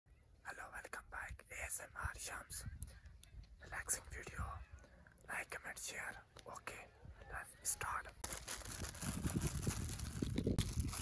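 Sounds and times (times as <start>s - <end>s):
man whispering softly: 0.4s - 8.2s.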